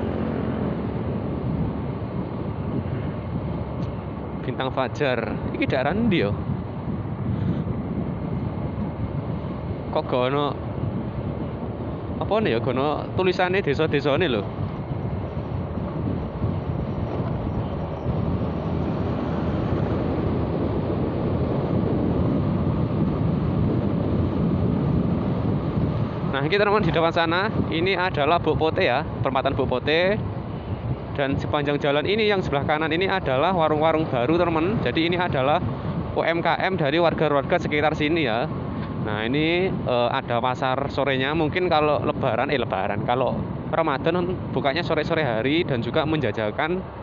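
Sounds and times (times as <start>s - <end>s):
motorcycle engine: 0.0s - 4.3s
road noise: 0.0s - 47.0s
wind rumbling on microphone: 0.0s - 47.0s.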